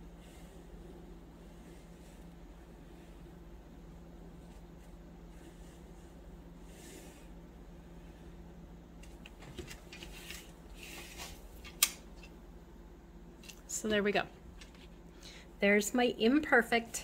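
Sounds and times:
low hum: 0.0s - 9.4s.

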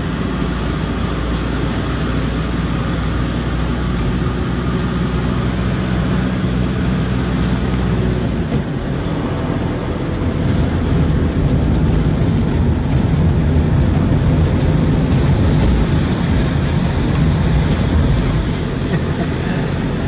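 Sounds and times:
car engine and tyres droning: 0.0s - 20.0s.

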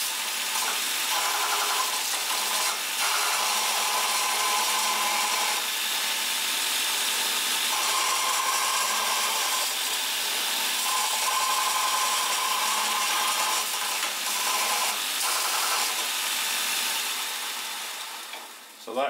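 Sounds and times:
belt sharpener grinding: 0.0s - 18.6s.

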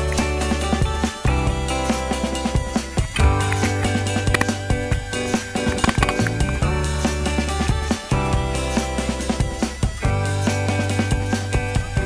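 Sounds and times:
music with bass and beat: 0.0s - 12.0s.

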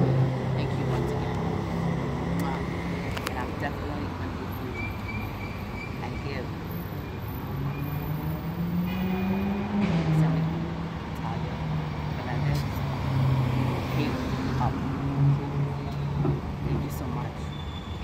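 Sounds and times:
vehicle engine hum: 0.0s - 18.0s.

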